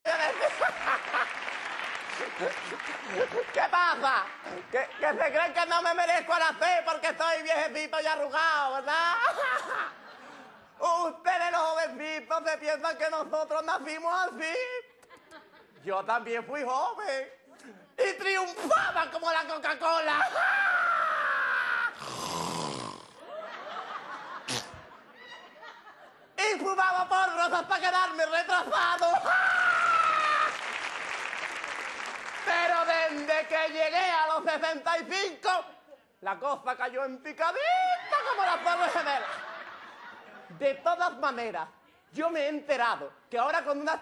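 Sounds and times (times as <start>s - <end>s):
audience applauding: 0.1s - 5.2s, 28.9s - 33.7s
studio audience laughing: 0.1s - 5.8s, 8.9s - 10.8s, 15.0s - 15.9s, 23.2s - 26.4s, 37.8s - 41.1s.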